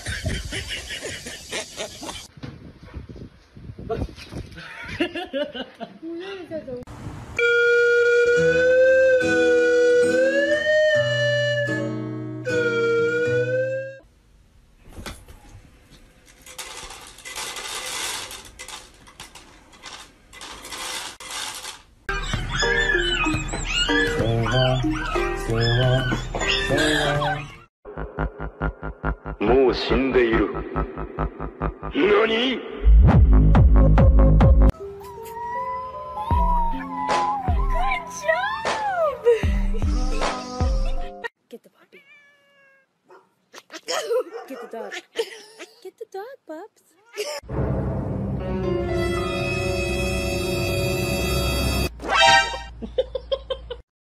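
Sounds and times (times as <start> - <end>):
puppy howling: 22.1 - 27.7, 34.8 - 38.8
background music with bass beat: 33.0 - 34.7, 39.4 - 41.1
dog howling: 34.9 - 38.0.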